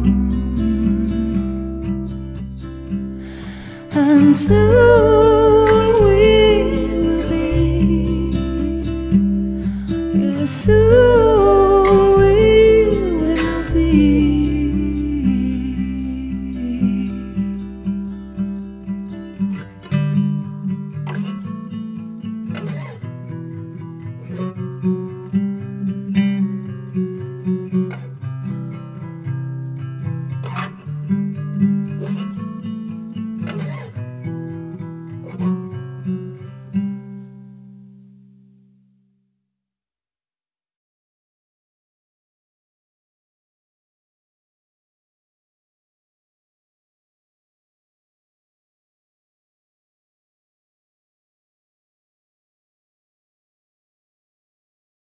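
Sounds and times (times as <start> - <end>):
person singing: 0.0 - 1.6, 3.4 - 9.2, 10.0 - 17.6
acoustic guitar picking and strumming: 0.0 - 38.4.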